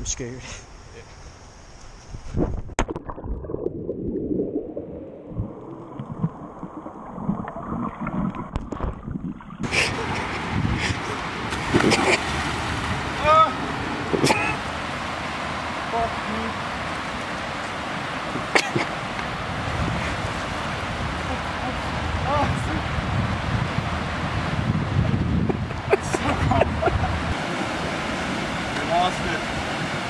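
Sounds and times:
wind: 0:00.0 - 0:30.0
water sloshing: 0:02.8 - 0:15.9
splash into water: 0:11.5 - 0:12.8.

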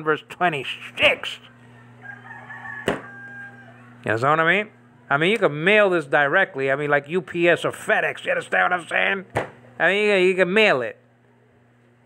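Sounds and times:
rooster crowing: 0:01.5 - 0:04.0.

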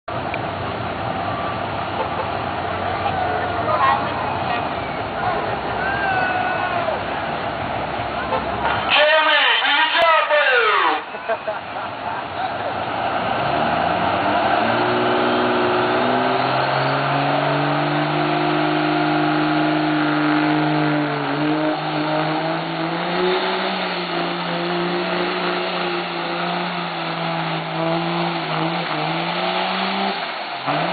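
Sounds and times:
diesel truck engine at full throttle: 0:00.1 - 0:30.9.

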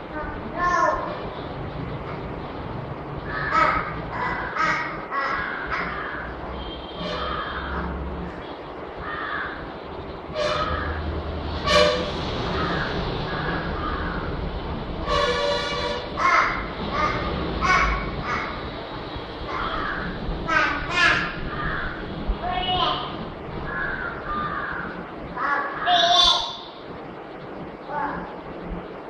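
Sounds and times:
crows cawing: 0:03.2 - 0:08.0, 0:09.0 - 0:09.7, 0:10.5 - 0:11.1, 0:12.5 - 0:14.5, 0:16.2 - 0:18.8, 0:19.5 - 0:22.1, 0:23.7 - 0:26.8.

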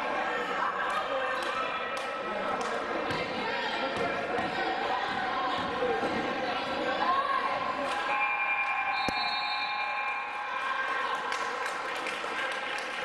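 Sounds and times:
voices in a gym: 0:00.0 - 0:13.0.

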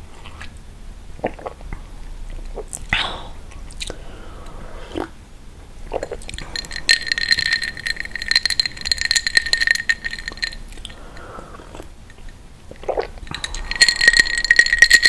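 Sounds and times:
soft mouth sounds: 0:00.0 - 0:00.6, 0:01.2 - 0:08.8, 0:09.4 - 0:14.9
sipping and swallowing water: 0:01.2 - 0:05.2, 0:05.8 - 0:15.0
rapid clinks: 0:06.2 - 0:11.3, 0:13.2 - 0:15.0.

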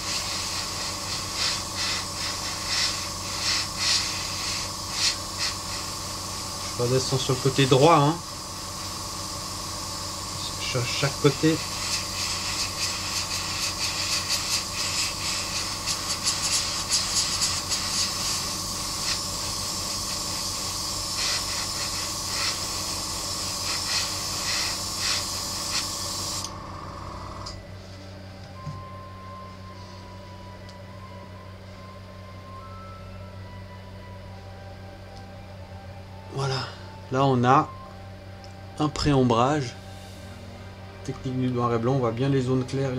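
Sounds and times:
airbrush spraying paint: 0:00.0 - 0:26.5, 0:39.8 - 0:40.4
low steady hum: 0:26.4 - 0:42.9.

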